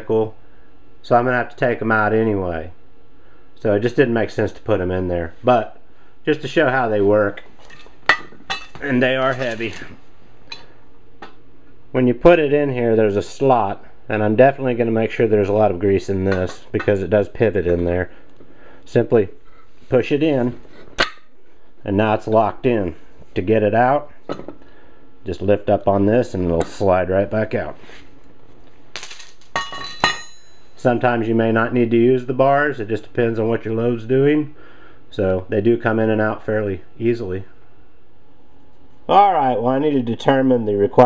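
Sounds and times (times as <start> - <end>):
ringing metallic clink: 29.0 - 30.8.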